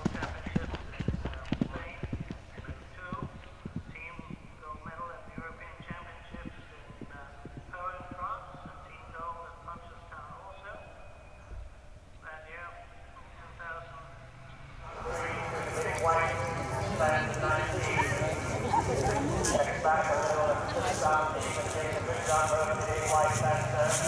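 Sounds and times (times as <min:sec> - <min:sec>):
horse hoofbeats on turf: 0:00.0 - 0:10.4
background voices: 0:00.0 - 0:11.0, 0:12.2 - 0:24.0.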